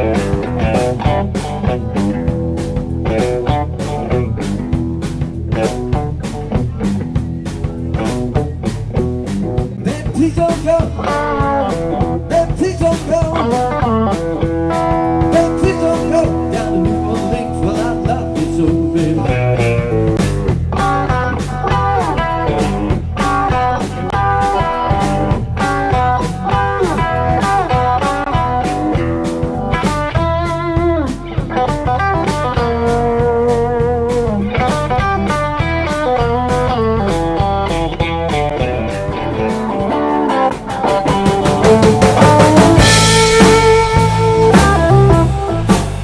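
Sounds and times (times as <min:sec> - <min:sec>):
bass and drums: 0:00.0 - 0:46.0
blues-rock band music: 0:00.0 - 0:46.0
electric guitar lead with bent notes: 0:00.0 - 0:46.0.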